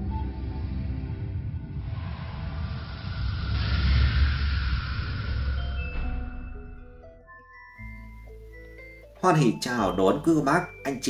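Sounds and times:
deep rumble: 0.0 - 7.3
rushing whoosh: 0.4 - 6.9.

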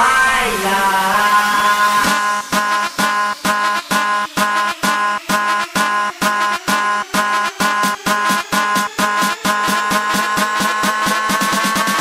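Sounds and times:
dance beat drums: 0.0 - 12.0
held synth chords: 0.0 - 12.0.

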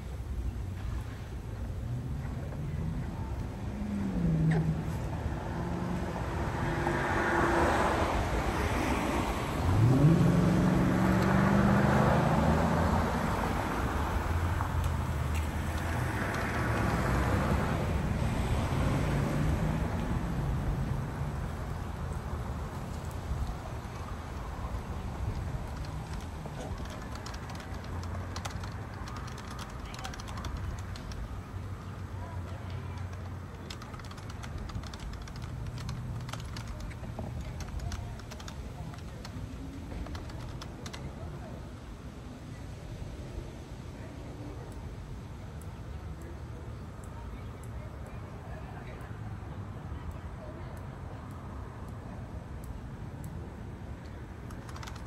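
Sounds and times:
road traffic passing: 0.0 - 55.0
vehicle engine accelerating: 1.8 - 41.1
keyboard typing clicks: 25.7 - 31.2, 32.9 - 41.1, 54.5 - 55.0.

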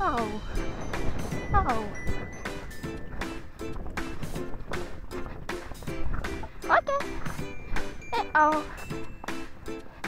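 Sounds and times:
music with steady beat: 0.1 - 10.0.

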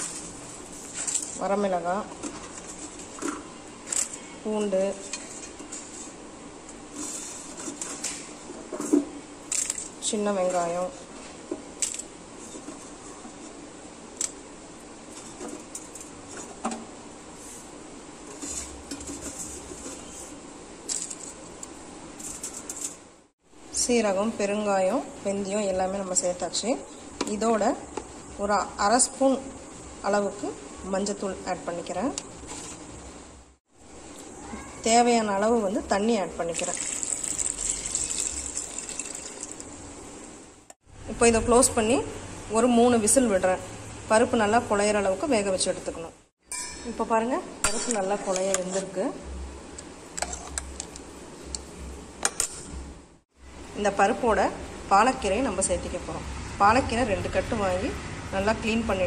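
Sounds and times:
water pouring into a pot: 36.5 - 39.8.

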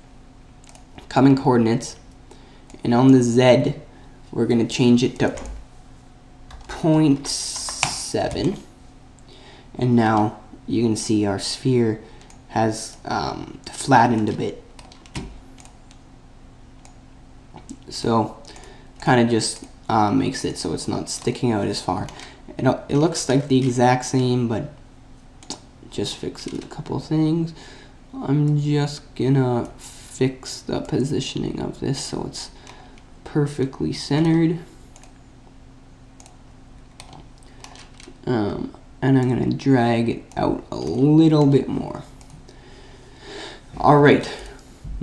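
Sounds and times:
faint steady hum: 0.0 - 45.0
keyboard and mouse clicks: 0.6 - 1.1, 14.1 - 16.0, 36.2 - 38.2.

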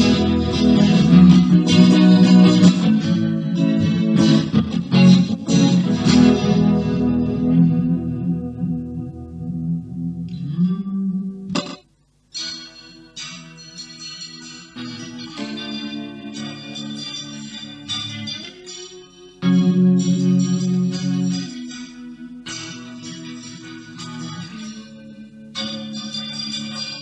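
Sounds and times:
electric guitar ringing chords: 0.0 - 27.0.

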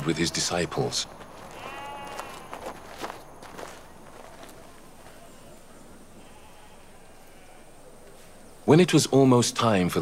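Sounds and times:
sheep bleating: 1.5 - 2.7, 6.1 - 7.8.

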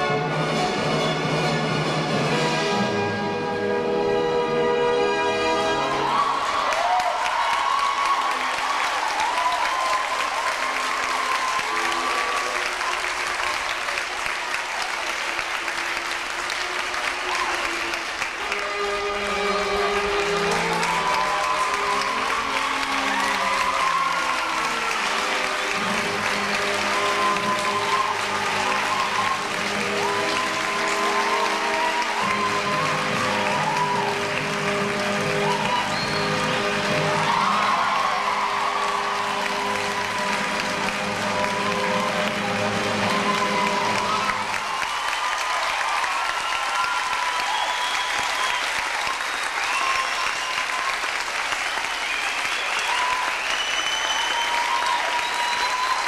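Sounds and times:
audience applauding: 0.0 - 0.8, 5.4 - 56.0
music with melody: 0.0 - 6.1, 24.6 - 37.5, 38.8 - 44.4.

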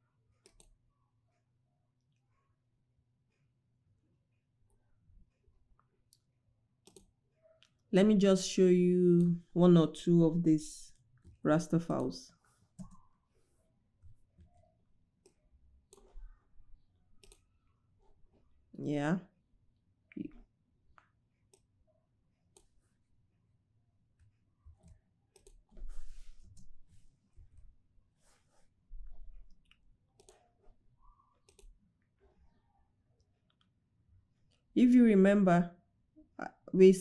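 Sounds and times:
keyboard and mouse clicks: 0.4 - 0.8, 6.1 - 7.8, 11.2 - 13.1, 14.4 - 16.4, 17.2 - 17.5, 24.8 - 25.8, 29.5 - 31.8.

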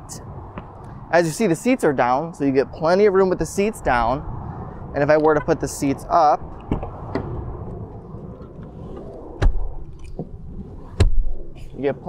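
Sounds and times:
seatback locking thud: 8.9 - 11.6.

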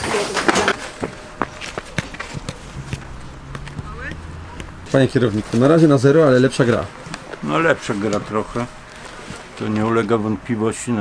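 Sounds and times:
footsteps on concrete: 0.7 - 7.4.

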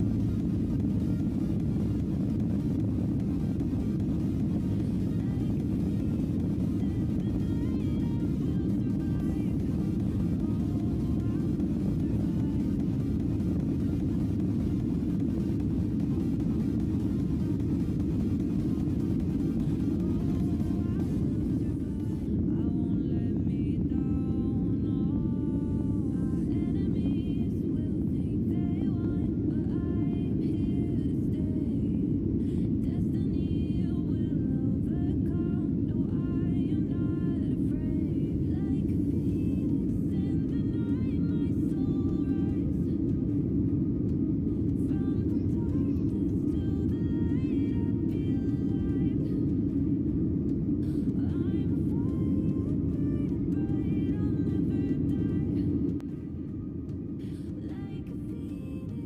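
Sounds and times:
background music: 0.0 - 59.0
jet engines rumbling in cabin: 0.0 - 59.0.

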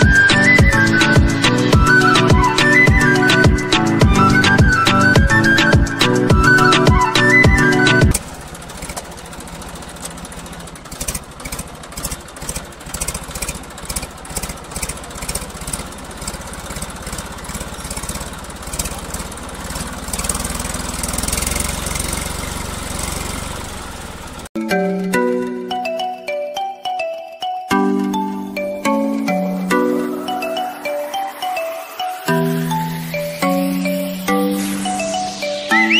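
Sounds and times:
music: 0.0 - 8.2, 24.6 - 35.9
small engine puttering: 8.1 - 24.6.

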